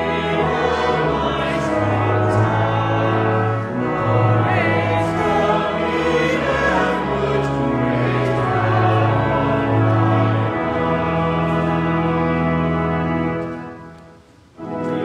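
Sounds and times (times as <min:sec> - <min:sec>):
choir singing a hymn: 0:00.0 - 0:13.3, 0:14.7 - 0:15.0
organ accompaniment: 0:00.0 - 0:15.0.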